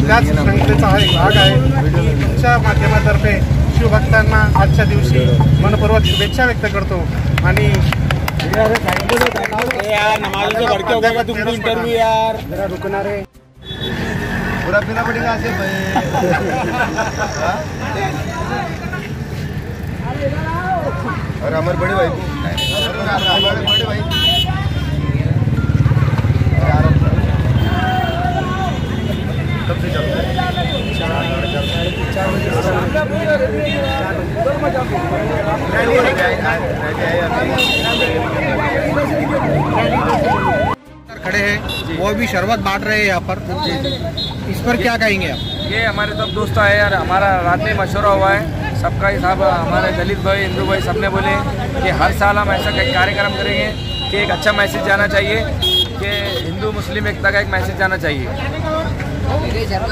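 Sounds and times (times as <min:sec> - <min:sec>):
men talking: 0:00.0 - 0:13.4, 0:14.4 - 0:59.9
men chattering: 0:00.0 - 0:13.5, 0:14.1 - 0:59.9
road traffic rumble: 0:00.0 - 0:59.9
vehicle engine passing: 0:13.5 - 0:22.3, 0:34.2 - 0:40.8.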